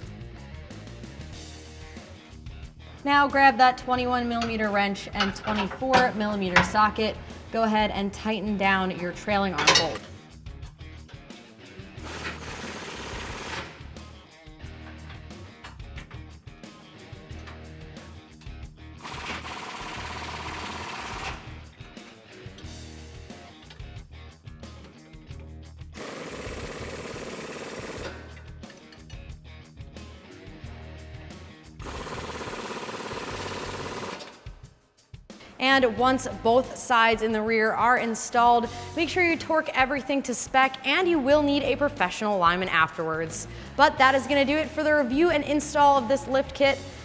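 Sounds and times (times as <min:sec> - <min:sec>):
pneumatic impact wrench hammering: 0:12.0 - 0:13.8, 0:19.0 - 0:21.5, 0:26.0 - 0:28.9.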